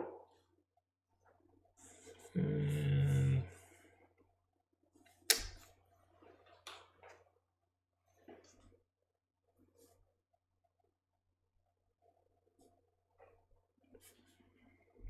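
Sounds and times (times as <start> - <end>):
low hummed voice: 1.9 - 3.9.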